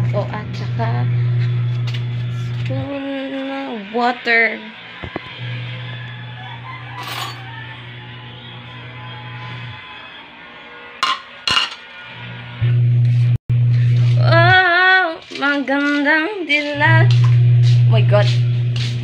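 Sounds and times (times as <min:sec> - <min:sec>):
background music: 0:00.0 - 0:12.6
person singing: 0:02.3 - 0:10.3, 0:12.6 - 0:19.0
plate and spoon clinking: 0:11.0 - 0:11.9.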